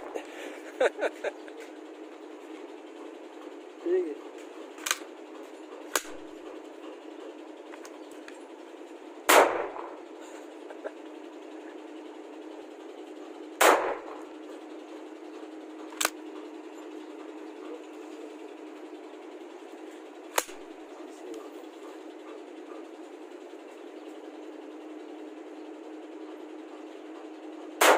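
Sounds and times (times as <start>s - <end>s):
sharp clicks: 4.7s - 5.1s, 5.9s - 6.6s, 15.8s - 16.4s, 20.3s - 20.7s
rifle shots with echo: 5.9s - 6.3s, 9.3s - 10.0s, 13.6s - 14.2s, 20.3s - 20.6s.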